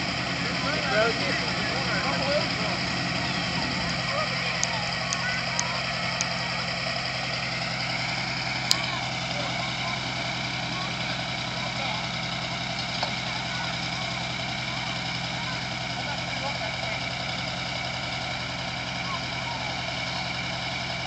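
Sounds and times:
people talking: 0.0 - 7.4, 8.6 - 12.2, 12.9 - 17.2, 18.9 - 20.5
truck engine idling: 0.0 - 21.0.

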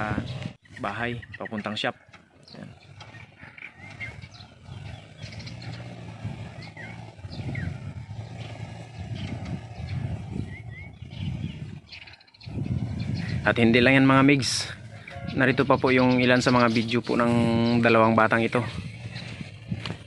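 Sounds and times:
birds chirping: 0.0 - 20.0
small engine droning: 0.0 - 20.0.

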